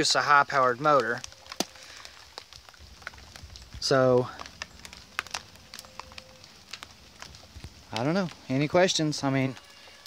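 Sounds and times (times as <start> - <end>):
faint light ticks and crackles: 0.0 - 10.0.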